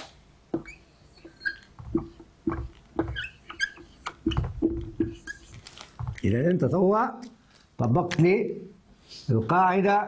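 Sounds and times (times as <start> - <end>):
marker squeaking on whiteboard: 0.5 - 6.3.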